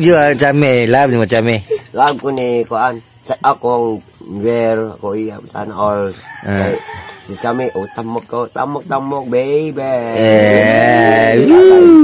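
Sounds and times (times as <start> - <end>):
man making chicken-like calls: 10.0 - 12.0.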